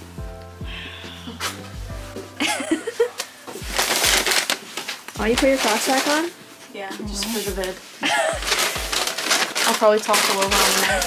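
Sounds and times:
packaging crinkling: 2.9s - 6.4s, 7.2s - 11.0s.

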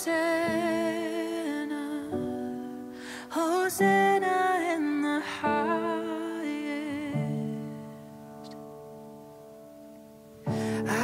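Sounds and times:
slow worship music: 0.0s - 11.0s.

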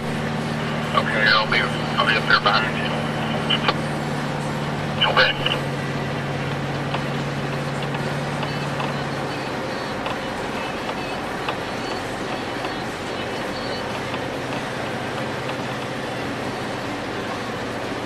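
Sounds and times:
low engine hum: 0.0s - 18.0s
road noise inside vehicle: 0.0s - 18.0s.

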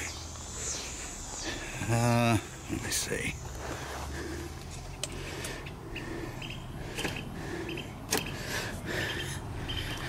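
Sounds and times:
bird chirps: 0.0s - 3.5s, 5.9s - 10.0s.

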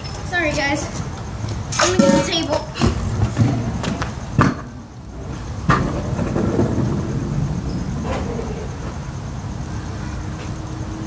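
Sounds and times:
scooter wheels rolling on concrete: 0.0s - 11.0s.

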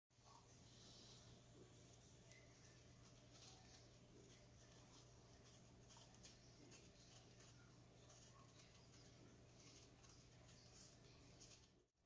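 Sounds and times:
low steady hum: 0.2s - 12.0s
knife scraping fruit peel: 2.2s - 11.8s.

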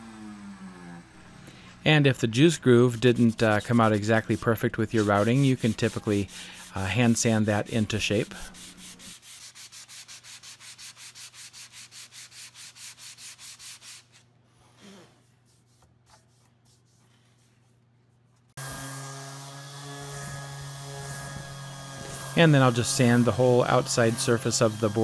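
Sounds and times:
hand sanding wood: 2.1s - 14.2s, 18.6s - 25.0s
orbit sander humming: 18.6s - 25.0s.

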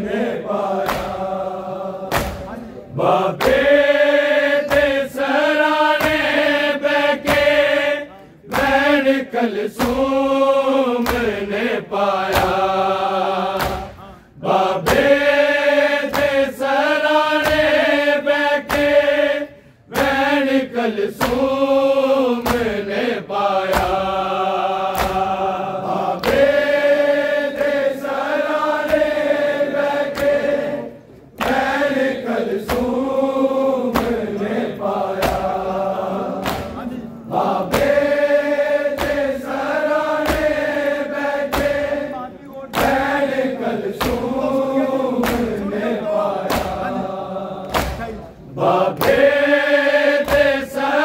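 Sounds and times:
men chanting in unison: 0.0s - 51.0s
hands striking chests: 2.1s - 2.6s, 36.4s - 36.9s.

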